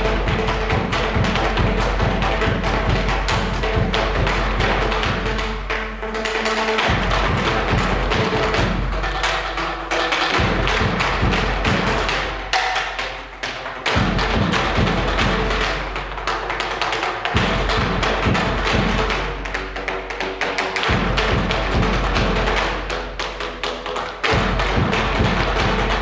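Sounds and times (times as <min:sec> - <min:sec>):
percussion ensemble playing: 0:00.0 - 0:26.0.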